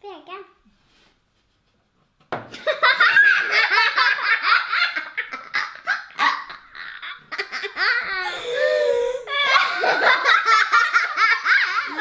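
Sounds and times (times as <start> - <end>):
girls laughing: 2.5 - 12.0.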